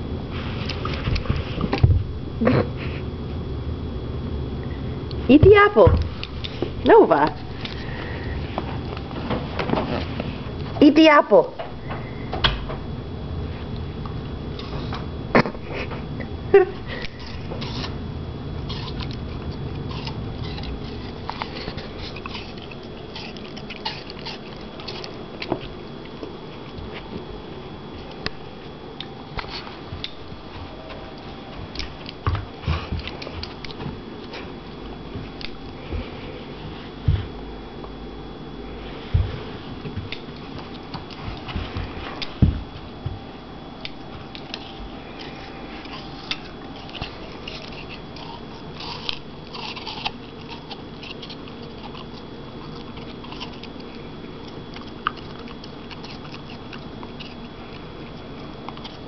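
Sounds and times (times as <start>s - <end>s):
puppy crunching apple: 5.1s - 10.8s, 13.6s - 16.0s, 16.8s - 18.0s, 18.6s - 36.2s, 43.8s - 59.0s
chewing clicks: 18.7s - 27.0s, 35.3s - 35.7s, 43.8s - 59.0s.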